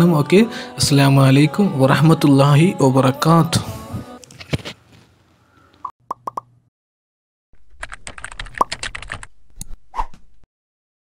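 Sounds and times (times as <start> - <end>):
keyboard typing clicks: 7.8 - 9.3.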